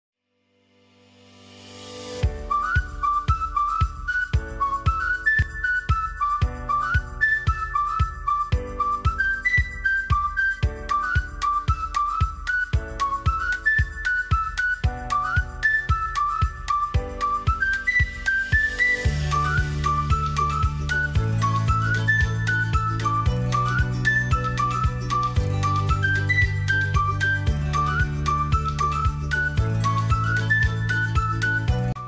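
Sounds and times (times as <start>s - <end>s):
whistle-like melody: 2.1s - 32.0s
piano chords: 2.2s - 32.0s.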